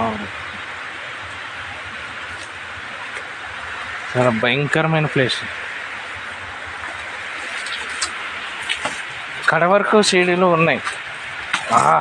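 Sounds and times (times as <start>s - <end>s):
distant running water: 0.0s - 12.0s.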